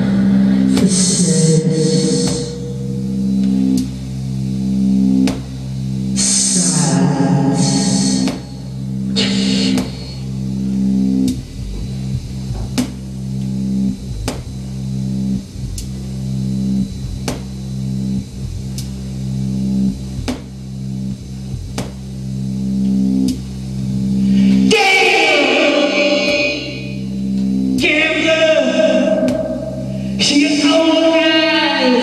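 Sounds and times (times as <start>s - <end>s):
low synthesizer drone: 0.0s - 32.0s.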